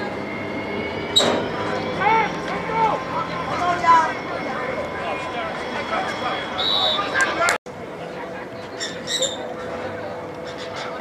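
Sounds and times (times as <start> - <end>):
diesel locomotive hum: 0.0 - 11.0
players shouting: 1.4 - 7.6.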